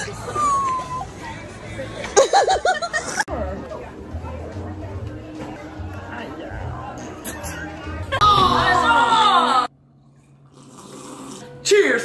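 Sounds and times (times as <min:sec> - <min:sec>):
sipping from mugs: 0:10.1 - 0:11.6.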